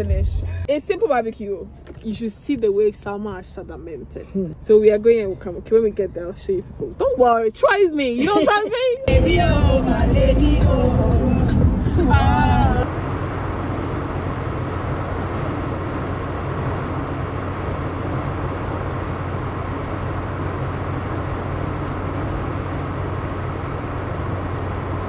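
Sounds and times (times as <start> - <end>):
low drone: 9.1 - 25.0.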